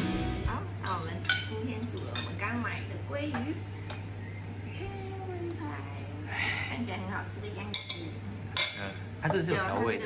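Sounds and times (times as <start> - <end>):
low steady hum: 0.0 - 10.0
dishes and cutlery clinking: 0.8 - 2.5, 7.6 - 9.5.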